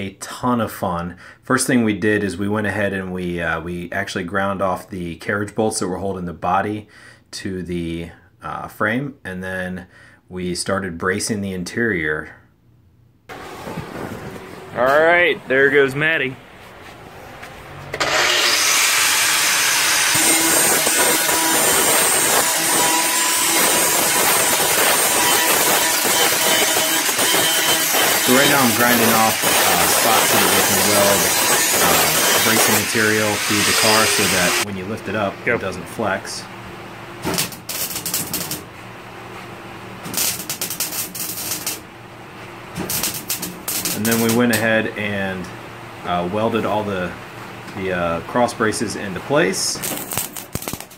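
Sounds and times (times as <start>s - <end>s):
arc welder crackling: 17.7s - 35.3s, 37.2s - 38.8s, 39.9s - 42.0s, 42.6s - 44.9s, 49.5s - 50.9s
angle grinder grinding metal: 17.8s - 34.7s, 40.1s - 41.8s, 42.8s - 44.6s, 49.8s - 50.9s.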